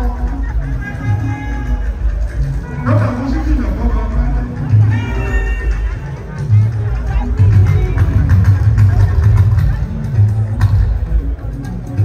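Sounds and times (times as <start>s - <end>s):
live band music heavy bass: 0.0s - 12.0s.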